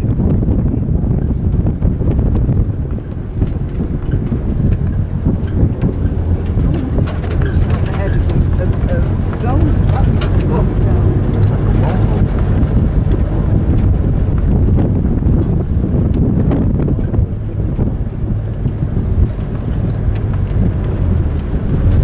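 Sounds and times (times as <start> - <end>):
vehicle rumbling and rattling: 0.0 - 22.0
wind buffeting microphone: 0.0 - 22.0
faint voices: 5.9 - 12.7.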